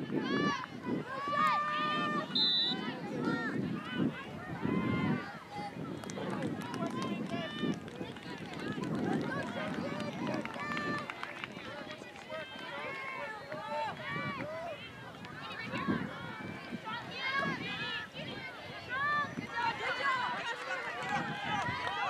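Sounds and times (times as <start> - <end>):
crowd calling and shouting: 0.0 - 22.0.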